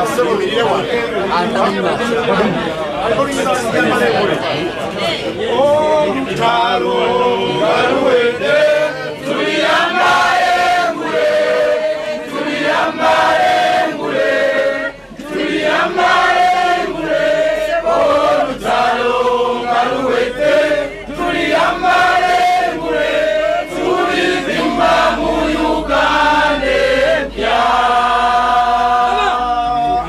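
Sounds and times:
crowd chanting and singing: 0.0s - 30.0s.

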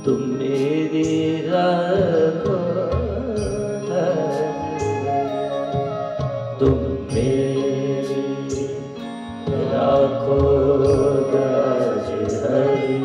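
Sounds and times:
sharp percussion strikes: 0.0s - 13.0s
person singing chant-like vocals: 6.6s - 13.0s.

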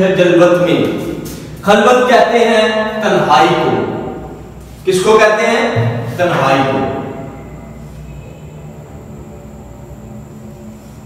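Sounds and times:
faint high whine: 0.0s - 11.0s
steady low hum: 0.0s - 11.0s.

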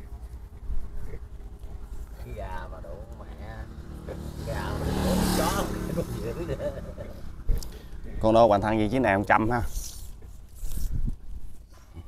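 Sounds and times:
motor vehicle passing: 1.2s - 9.0s.

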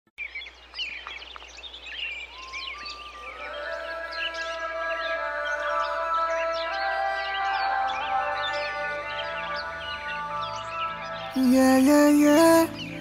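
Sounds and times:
birds chirping: 0.2s - 13.0s
music with sustained notes: 1.3s - 13.0s.

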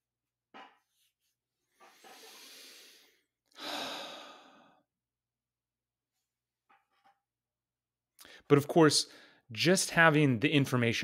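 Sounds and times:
person breathing close to microphone: 1.8s - 4.9s.

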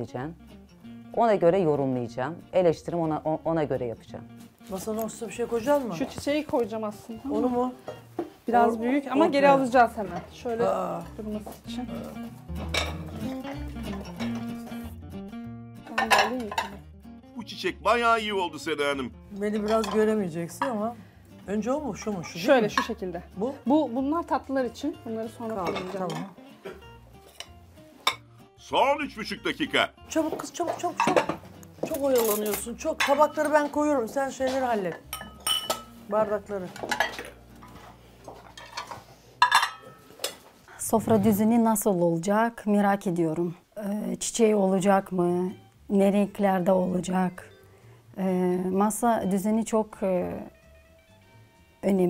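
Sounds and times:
background music with bass line: 10.4s - 16.0s
tableware knocking: 12.6s - 13.3s, 30.6s - 32.4s, 34.5s - 36.0s, 38.6s - 40.4s
ceramic plates clinking: 12.6s - 14.6s, 15.9s - 16.8s, 19.4s - 20.9s, 25.5s - 28.2s, 30.2s - 36.0s, 36.7s - 41.4s
glass clink: 35.1s - 36.0s, 39.4s - 40.0s.

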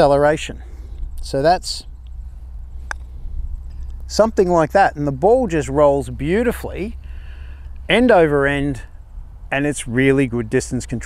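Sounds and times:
low background rumble: 0.0s - 11.0s
putter striking golf ball: 2.8s - 4.1s.

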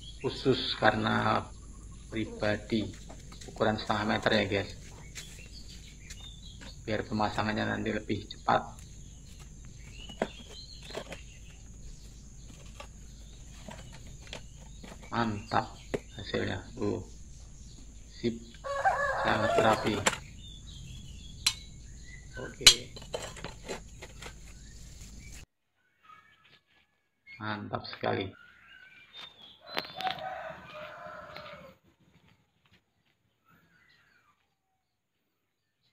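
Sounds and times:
faint bird chirps: 0.0s - 31.7s, 33.0s - 35.9s
wooden mould knocking on dirt: 8.6s - 16.7s
rooster crowing: 18.6s - 20.2s, 29.6s - 31.8s.

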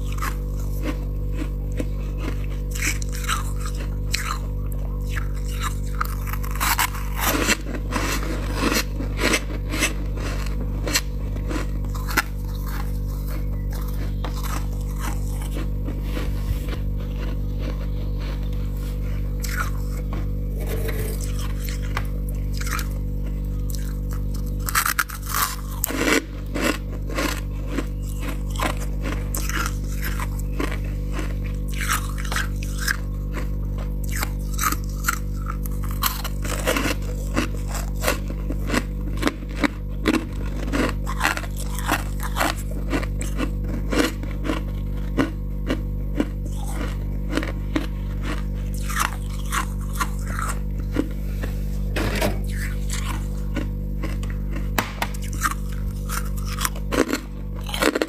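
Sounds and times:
frost being crunched and chewed: 0.0s - 58.0s
steady low hum: 0.0s - 58.0s.

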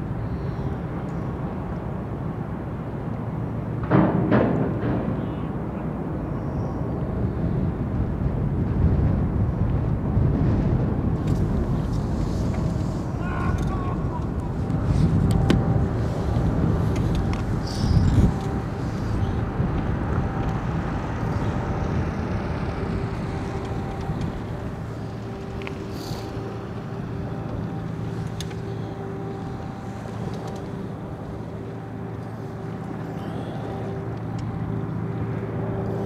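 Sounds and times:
faint ship engine hum: 0.0s - 36.0s
wind rumbling on microphone: 0.0s - 36.0s.

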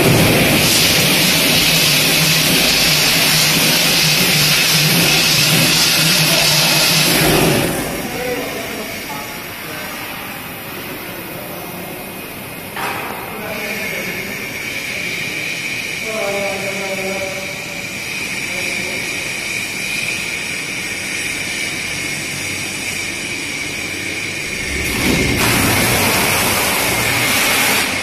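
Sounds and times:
machine running with hum and hiss: 0.0s - 28.0s.

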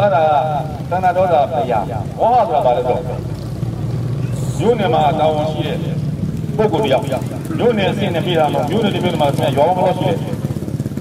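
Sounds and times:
man speaking through loudspeakers: 0.0s - 3.4s, 4.3s - 10.6s.

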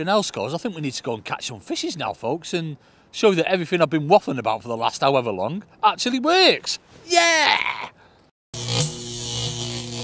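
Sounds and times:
sustained low synth chord: 8.6s - 10.0s.

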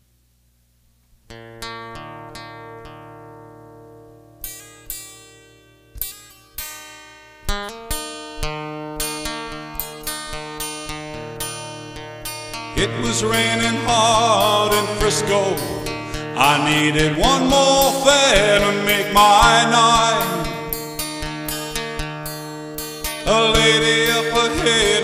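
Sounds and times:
acoustic guitar picking: 1.3s - 25.0s.

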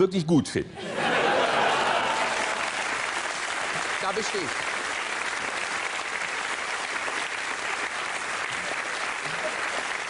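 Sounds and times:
audience applauding: 1.1s - 10.0s.

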